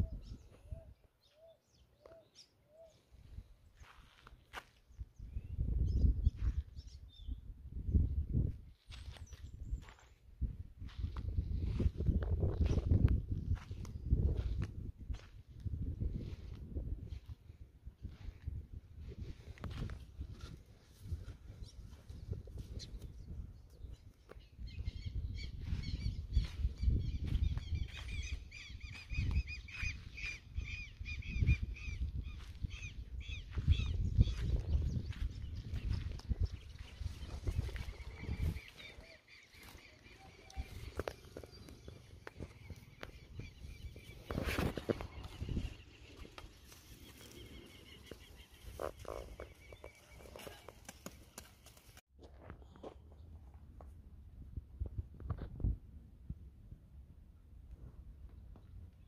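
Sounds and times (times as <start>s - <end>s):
farmyard birds calling: 24.3s - 51.9s.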